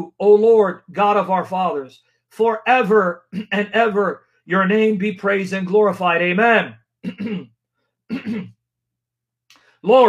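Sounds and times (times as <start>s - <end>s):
man clearing his throat: 3.2s - 3.7s, 7.0s - 8.6s.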